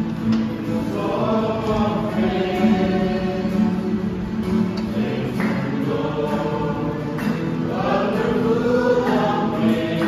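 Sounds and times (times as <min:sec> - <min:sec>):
acoustic guitar: 0:00.0 - 0:10.0
group singing in chorus: 0:00.0 - 0:10.0.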